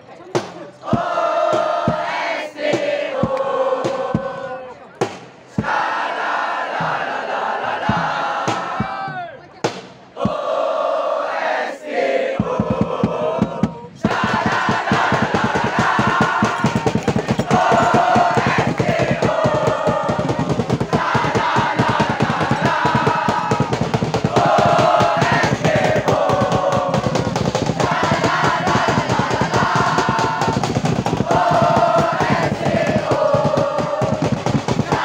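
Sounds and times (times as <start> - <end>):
fast drumbeat: 0.4 - 10.6, 12.4 - 35.0
students chanting in unison: 0.7 - 4.7, 5.5 - 9.1, 10.2 - 35.0.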